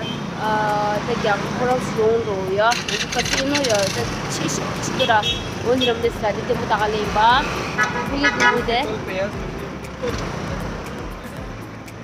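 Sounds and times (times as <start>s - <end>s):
street traffic noise: 0.0s - 12.0s
woman talking: 0.4s - 4.1s.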